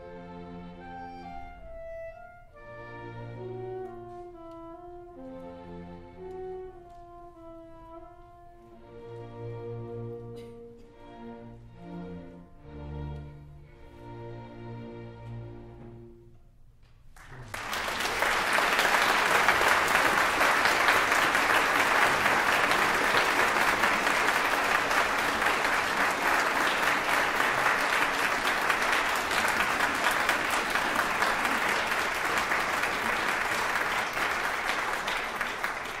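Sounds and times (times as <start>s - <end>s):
audience applauding: 17.1s - 36.0s.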